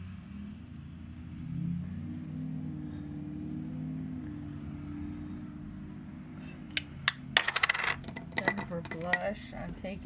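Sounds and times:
makeup cases clinking: 7.4 - 9.4.

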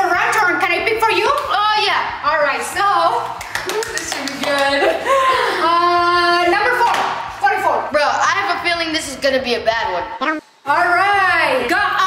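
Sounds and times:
hand clapping: 3.4 - 4.9.

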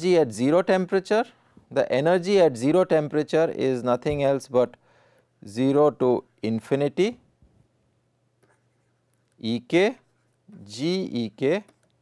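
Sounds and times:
person speaking: 0.0 - 4.8, 5.4 - 7.2, 8.4 - 12.0
low electrical hum: 0.0 - 12.0.

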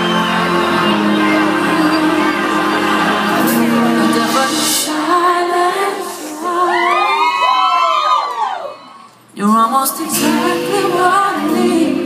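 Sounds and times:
audience whooping: 0.0 - 5.0, 6.4 - 9.1.

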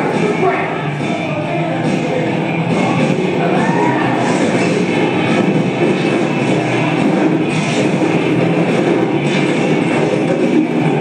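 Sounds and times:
loud rock music over speakers: 0.0 - 11.0.

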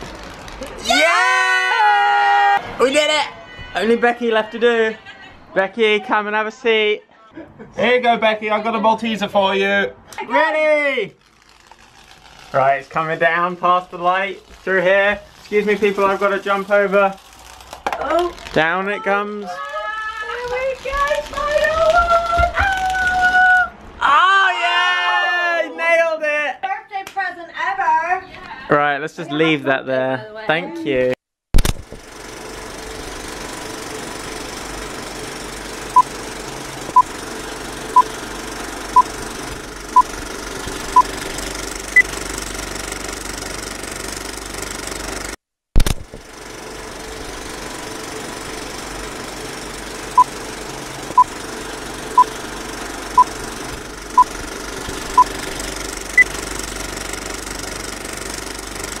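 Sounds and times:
sharp click: 31.6 - 32.0
electronic noise bed: 31.6 - 45.2, 45.8 - 59.0.

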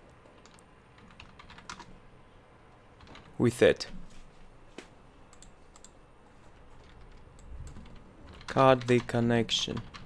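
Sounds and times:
keyboard and mouse clicks: 0.0 - 2.0, 2.7 - 3.4, 5.3 - 10.0.

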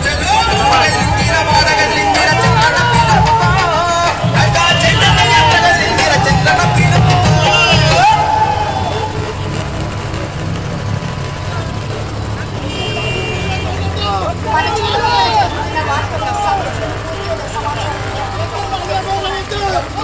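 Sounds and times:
crowd talking and calling: 0.0 - 20.0
vehicle engine hum: 0.0 - 20.0.

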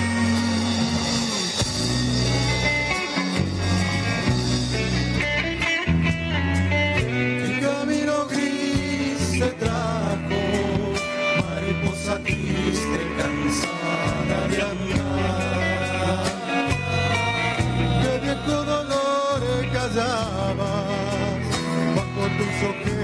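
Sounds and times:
deep bass line: 0.0 - 23.0
drum kit: 0.0 - 23.0
strummed acoustic guitars: 0.0 - 23.0.

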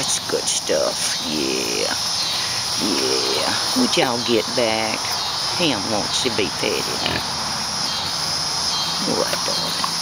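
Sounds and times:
hogs snuffling and breathing: 0.0 - 10.0.

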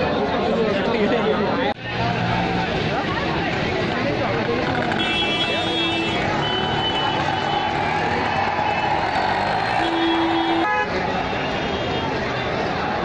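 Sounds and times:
crowd babble: 0.0 - 13.0
street traffic: 0.0 - 13.0
vehicle horns honking: 4.8 - 7.8, 9.7 - 12.1.

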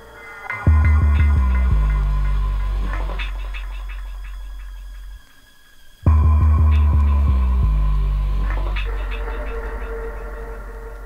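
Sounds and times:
drum and bass music: 0.0 - 11.0
deep sub-bass note: 0.7 - 5.2, 6.1 - 11.0
short deep bass notes: 0.7 - 5.2, 6.1 - 11.0.

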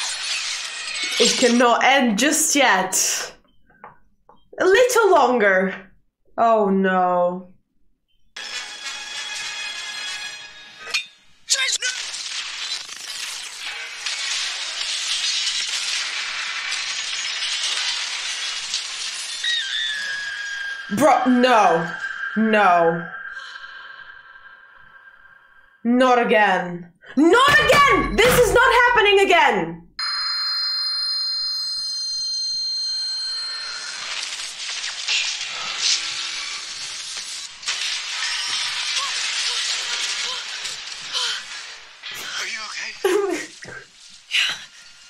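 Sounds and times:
crashing and shattering: 11.8 - 20.4, 34.0 - 42.2
high ringing tone: 20.0 - 25.0, 30.0 - 35.1.

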